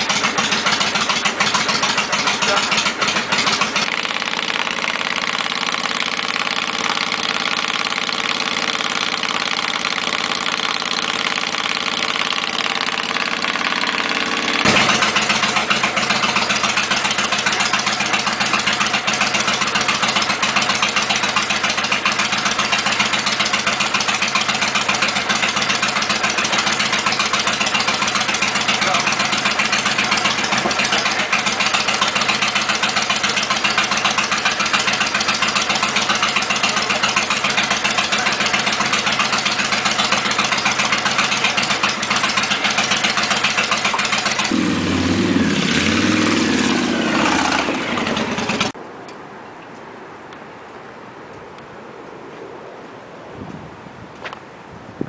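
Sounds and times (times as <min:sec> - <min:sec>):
motorcycle idling loudly: 0:00.0 - 0:48.8.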